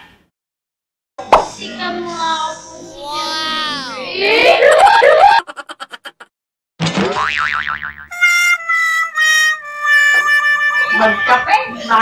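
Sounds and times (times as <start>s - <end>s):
springy boing: 6.9s - 8.2s.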